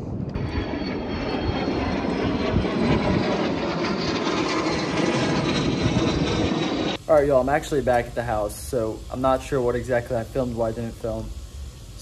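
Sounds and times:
airplane engines overhead: 0:00.0 - 0:12.0.

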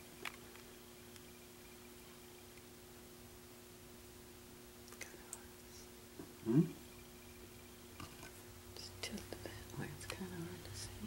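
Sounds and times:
steady low hum: 0:00.0 - 0:11.0
soft clicks: 0:04.9 - 0:05.5.

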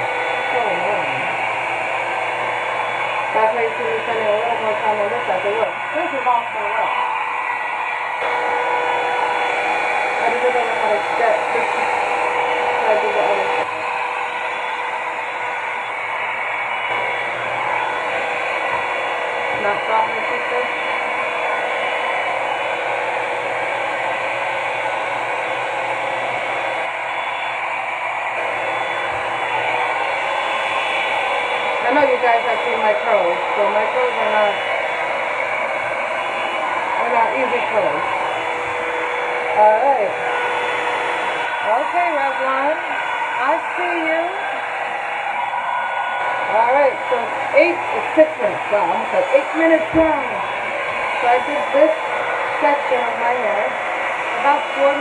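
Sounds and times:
hair dryer running: 0:00.0 - 0:55.0.

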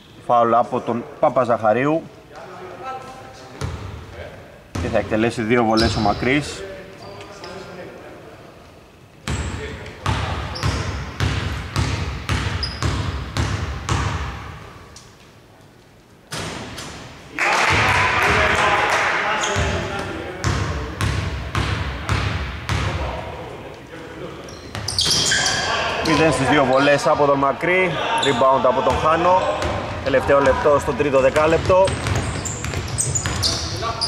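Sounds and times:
basketball bouncing on hardwood: 0:31.3 - 0:33.5.

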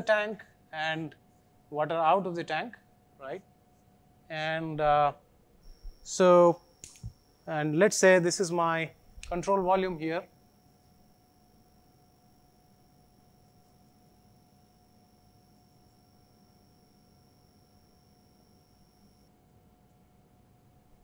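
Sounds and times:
faint high whine: 0:00.0 - 0:21.0
faint steady hum: 0:00.0 - 0:21.0.

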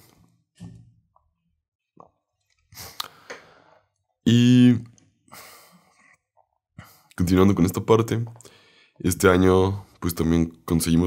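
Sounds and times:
short quick breath: 0:02.8 - 0:03.9.

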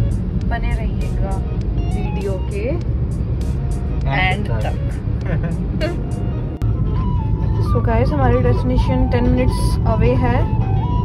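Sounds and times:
car engine and road noise: 0:00.0 - 0:11.0
music: 0:00.0 - 0:11.0.

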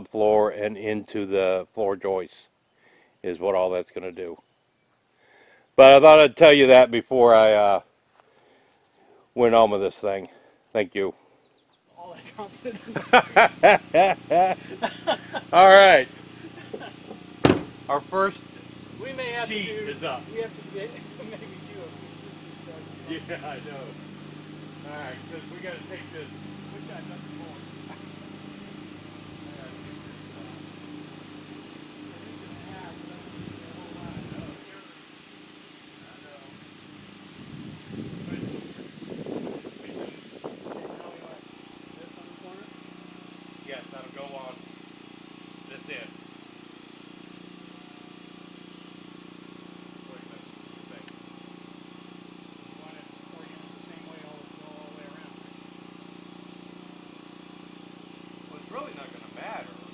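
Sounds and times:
engine hum: 0:12.0 - 0:59.9
faint voices talking: 0:17.9 - 0:35.2.

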